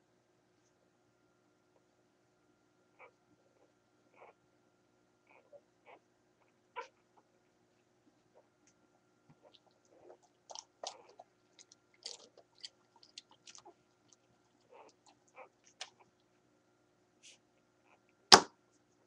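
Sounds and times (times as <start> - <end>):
puppies suckling: 9.3 - 16.4.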